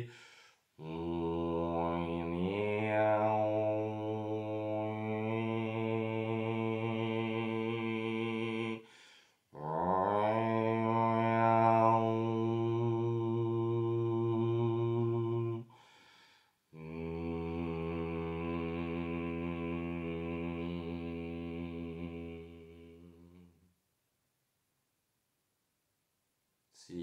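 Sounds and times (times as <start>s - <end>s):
breath: 0.0s - 0.7s, 8.8s - 9.5s, 15.7s - 16.7s
man chanting in a deep voice: 0.8s - 8.9s, 9.5s - 15.7s, 16.8s - 23.5s, 26.8s - 27.0s.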